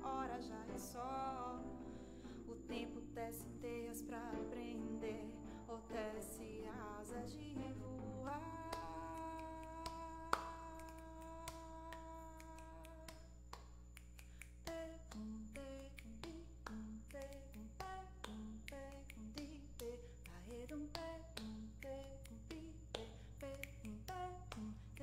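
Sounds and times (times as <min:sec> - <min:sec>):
electric keyboard chord: 0:00.0 - 0:10.8
finger snaps: 0:08.6 - 0:25.0.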